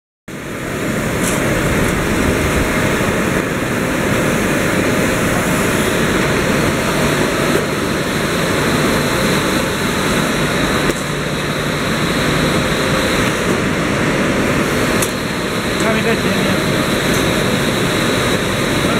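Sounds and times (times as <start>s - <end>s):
factory machinery noise: 0.3s - 18.9s.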